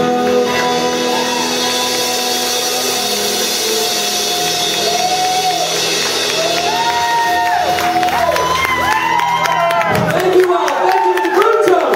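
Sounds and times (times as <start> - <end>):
live rock band playing: 0.0 - 11.9.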